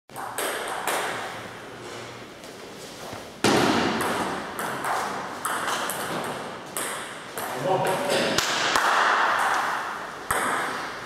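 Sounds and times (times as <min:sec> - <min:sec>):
table tennis ball hits: 0:00.1 - 0:01.3, 0:03.4 - 0:11.0.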